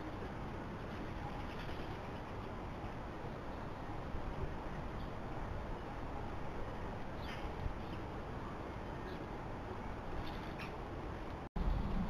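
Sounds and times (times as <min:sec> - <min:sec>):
microphone hiss and rumble: 0:00.0 - 0:12.0.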